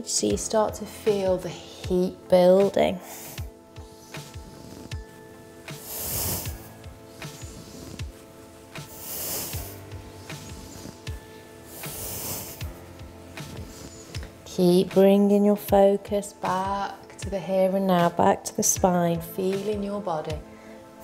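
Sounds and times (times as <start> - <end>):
soft background music: 0.0 - 21.0
person breathing: 3.0 - 3.6, 4.4 - 14.4, 20.5 - 21.0.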